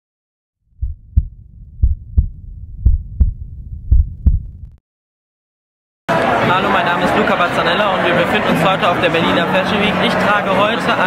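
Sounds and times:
low hum: 0.6 - 4.8
heartbeat thumps: 0.7 - 4.8.

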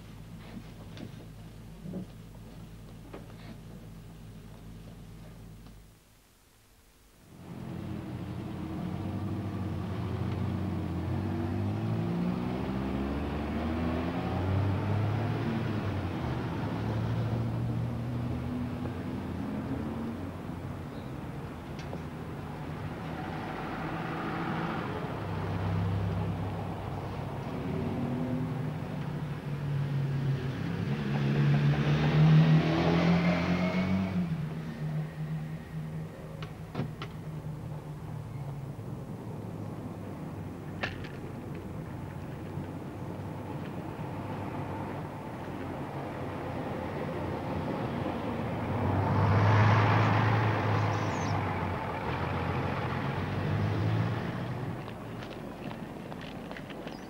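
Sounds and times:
cars passing: 7.4 - 57.0.

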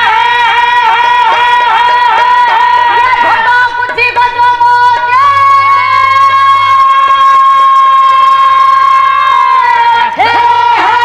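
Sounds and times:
faint percussion beats: 0.0 - 11.0.

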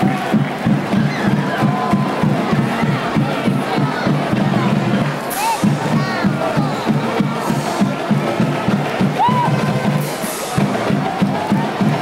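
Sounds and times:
band music beat: 0.0 - 12.0
crowd shouting and cheering: 0.0 - 12.0.

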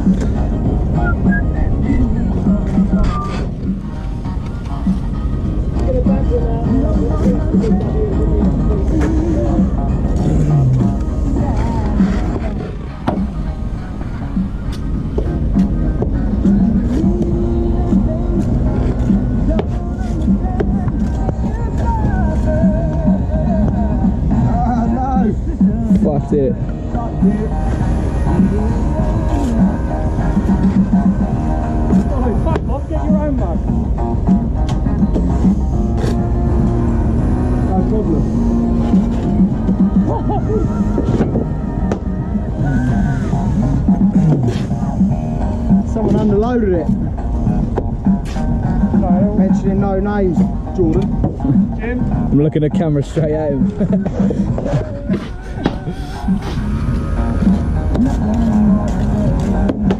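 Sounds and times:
pop music with singing on radio: 0.0 - 59.9.

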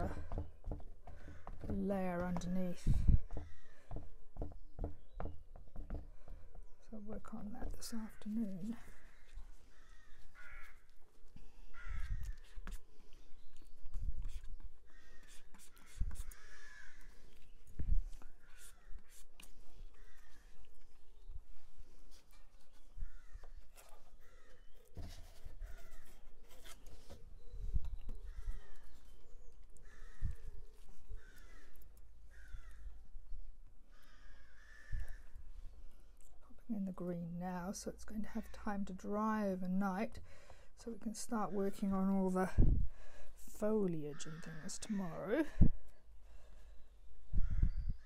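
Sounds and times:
knocks: 0.0 - 6.6.

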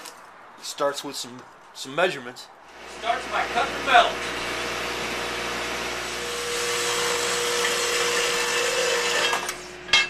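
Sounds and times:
bandsaw cutting metal: 2.7 - 10.0
steady saw whine: 2.7 - 10.0.

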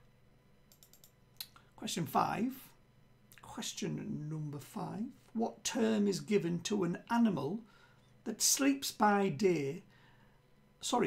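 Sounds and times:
computer keys clicking: 0.7 - 1.6
man speaking: 1.8 - 2.8, 3.4 - 7.6, 8.3 - 9.9.

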